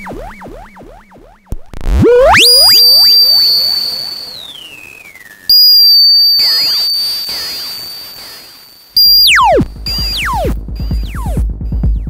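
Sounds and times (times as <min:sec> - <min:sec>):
swooping pitch glides: 0:00.0 - 0:10.5
high electronic tone with delay echoes: 0:02.0 - 0:11.1.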